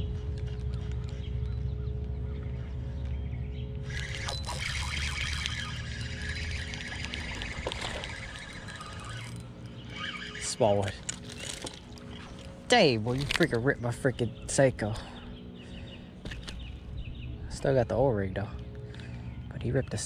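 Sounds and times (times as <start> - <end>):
spinning reel reeling in: 3.9 - 12.5.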